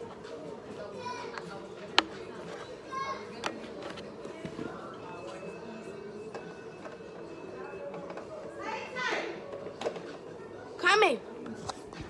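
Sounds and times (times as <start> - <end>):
faint music: 0.0 - 12.0.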